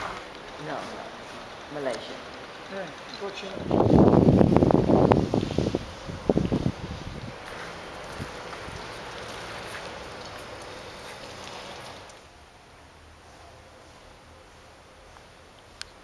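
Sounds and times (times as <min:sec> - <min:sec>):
steady outdoor hiss: 0:00.0 - 0:16.0.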